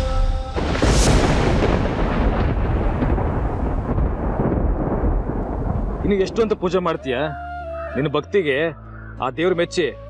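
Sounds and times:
deep thunder-like rumble: 0.6 - 7.1.

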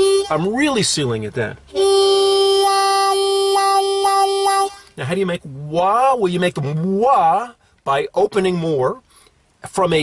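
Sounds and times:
muffled harmonica note: 0.0 - 0.6, 1.7 - 5.0.

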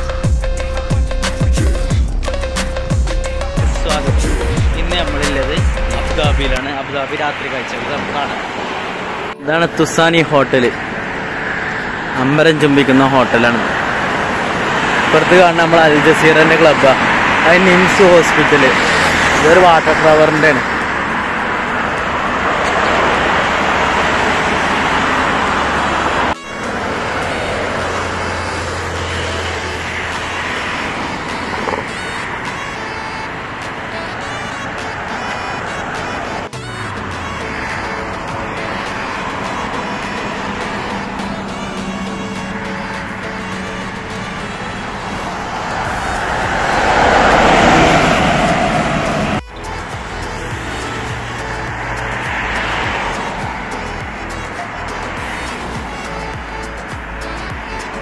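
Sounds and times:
background music: 0.0 - 8.2, 8.8 - 25.5, 26.3 - 58.0
road traffic noise: 0.0 - 58.0
vehicle passing close: 0.0 - 58.0.

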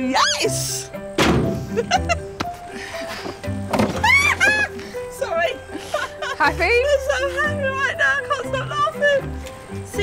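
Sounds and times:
background music: 0.0 - 10.0
woman laughing: 1.7 - 2.3, 5.6 - 7.8.

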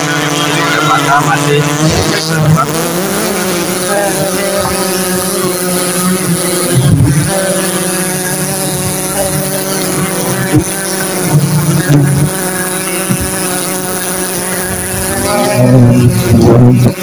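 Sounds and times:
swarm of bees buzzing: 0.0 - 17.0.

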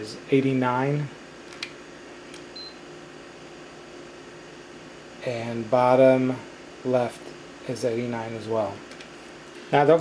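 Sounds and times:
laptop cooling fans hissing: 0.0 - 10.0.

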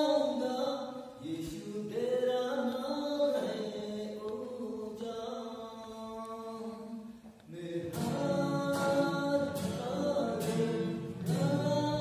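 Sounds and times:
man singing worship song: 0.0 - 12.0.

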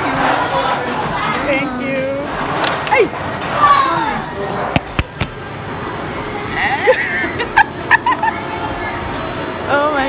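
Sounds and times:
general chatter: 0.0 - 10.0.

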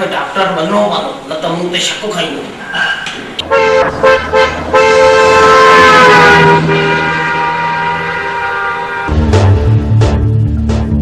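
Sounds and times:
horn tooting: 3.4 - 9.8.

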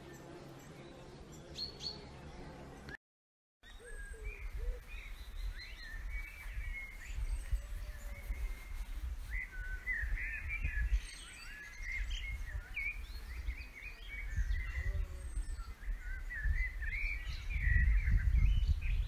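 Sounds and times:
small birds twittering: 0.0 - 3.0, 3.6 - 19.0
wind rumble on microphone: 3.8 - 19.0.

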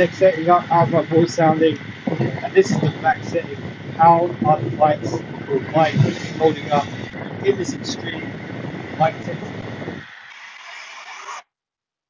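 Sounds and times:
handheld fan wind rushing: 0.0 - 11.4
road noise: 0.0 - 11.4.

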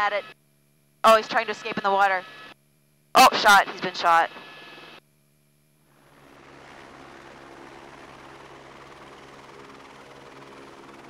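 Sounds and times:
helicopter engine and rotor drone: 0.0 - 0.4, 1.1 - 2.6, 3.2 - 11.0.

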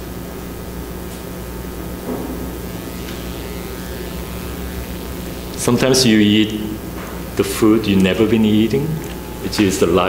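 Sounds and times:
low electrical hum: 0.0 - 10.0
room noise: 0.1 - 10.0.

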